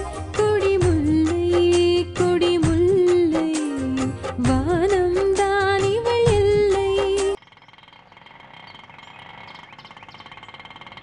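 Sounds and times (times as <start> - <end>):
woman singing theme song: 0.0 - 7.4
auto-rickshaw engine running: 7.1 - 11.0.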